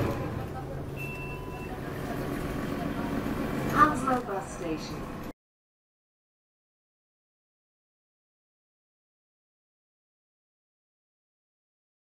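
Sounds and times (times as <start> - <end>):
bus diesel engine idling: 0.0 - 5.3
short electronic beep: 1.0 - 1.8.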